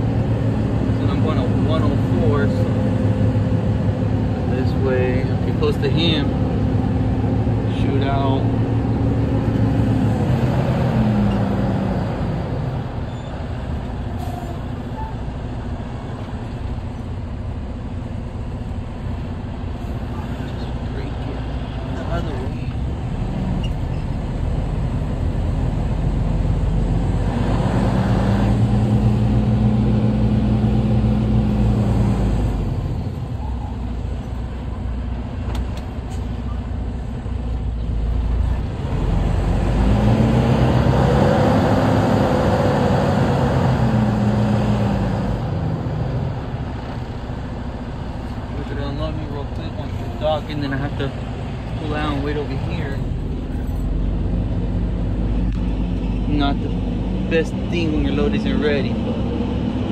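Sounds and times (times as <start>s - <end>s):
diesel truck engine running: 0.0s - 59.9s.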